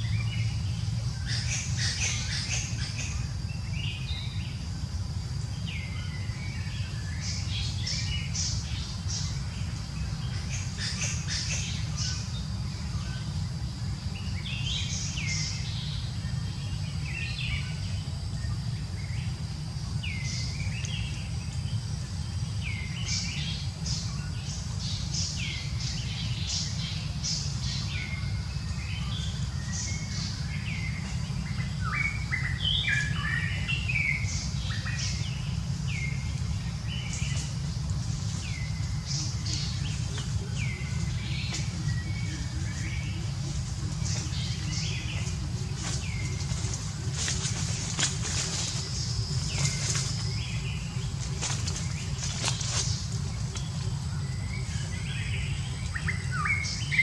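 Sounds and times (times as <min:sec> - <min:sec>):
low background rumble: 0:00.0 - 0:57.0
small birds chirping: 0:00.0 - 0:57.0.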